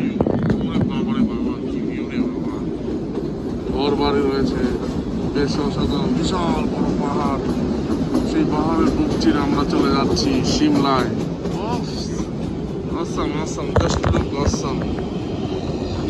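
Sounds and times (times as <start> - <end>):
people talking: 0.0 - 2.7, 3.7 - 7.4, 8.3 - 12.3, 12.9 - 15.0
train rumbling and rattling: 0.0 - 16.0.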